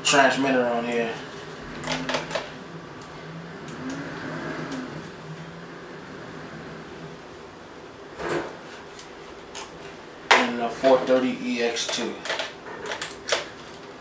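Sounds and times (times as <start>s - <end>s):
plastic and metal clicks and scrapes: 11.8s - 13.8s.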